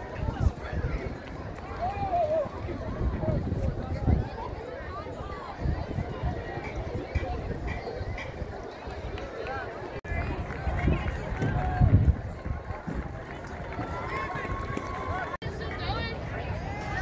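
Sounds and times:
distant crowd chatter: 0.0s - 17.0s.

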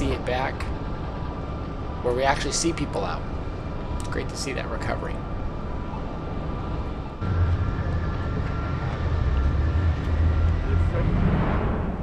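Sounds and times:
car engine and road noise: 0.0s - 12.0s
faint steady whine: 0.0s - 12.0s.

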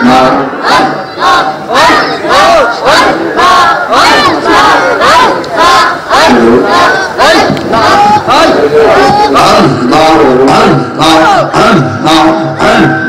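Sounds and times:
men chanting rhythmically: 0.0s - 13.0s.

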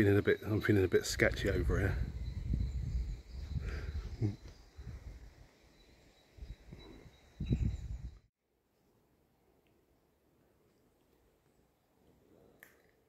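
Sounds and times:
wind rumbling on microphone: 1.0s - 5.5s, 6.4s - 8.3s.

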